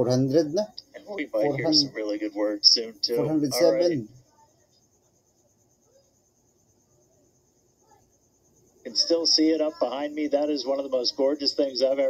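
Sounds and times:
steady high hiss: 0.0 - 4.2, 7.5 - 12.0.

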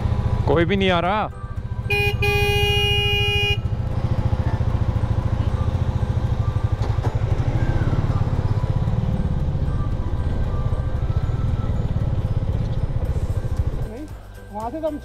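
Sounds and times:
motorcycle engine idling: 0.0 - 15.0
motorcycle horn blast: 1.9 - 3.9.

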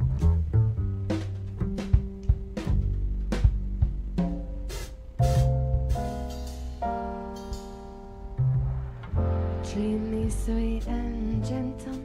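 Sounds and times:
drum kit strikes: 0.0 - 12.0
upright double bass: 0.0 - 12.0.

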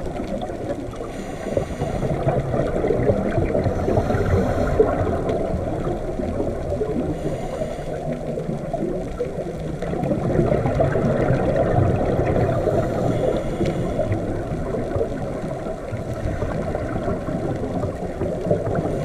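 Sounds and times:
underwater rushing of water: 0.0 - 19.0.

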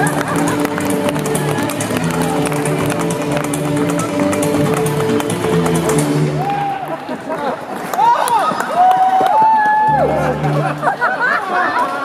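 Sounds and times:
upright bass: 9.9 - 11.0.

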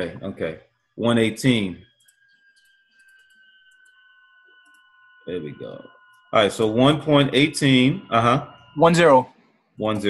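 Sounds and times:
thin high hum: 0.0 - 10.0
faint clicks: 4.6 - 4.8.

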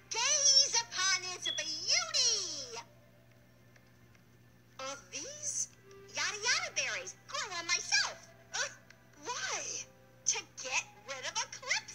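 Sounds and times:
faint low hum: 0.0 - 11.9
woman speaking: 0.1 - 2.9, 4.8 - 11.9.

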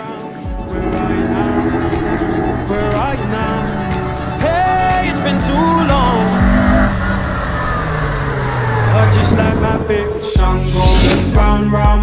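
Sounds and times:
car engine running: 0.5 - 10.7.

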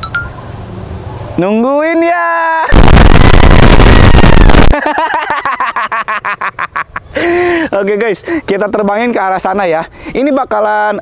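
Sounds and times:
distorted noise blast: 2.7 - 4.8.

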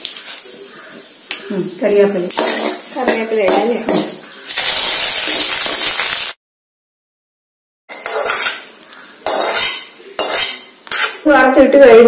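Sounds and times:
metal spoon scraping a pot: 7.9 - 11.3.

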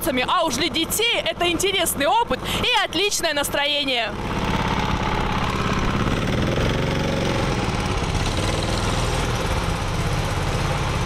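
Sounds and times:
go-kart engine drone: 0.0 - 11.0.

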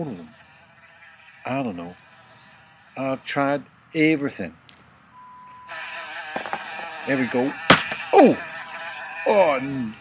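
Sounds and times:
fly buzzing: 5.7 - 9.1.

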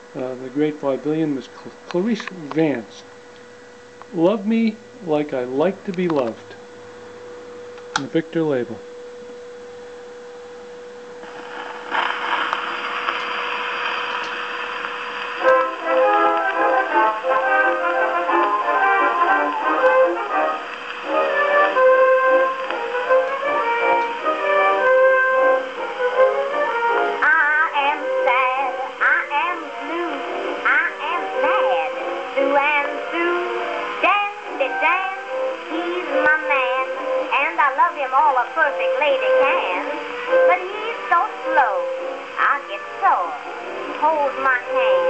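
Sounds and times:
faint vinyl crackles: 0.0 - 24.9, 25.6 - 45.0
record surface hiss: 0.0 - 45.0.

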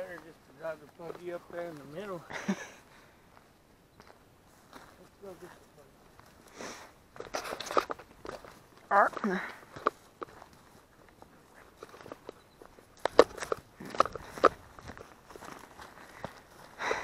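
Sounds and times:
footsteps on rough ground: 0.0 - 17.0.

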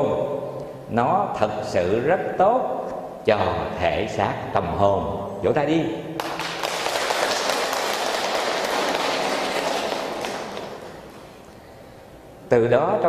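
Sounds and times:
audience applauding: 6.2 - 11.5.

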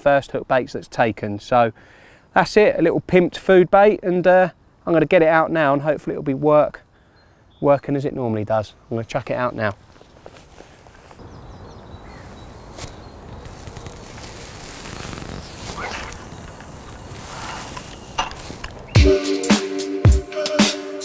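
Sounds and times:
outdoor noise: 0.0 - 19.2
music with a strong beat: 19.0 - 21.0.

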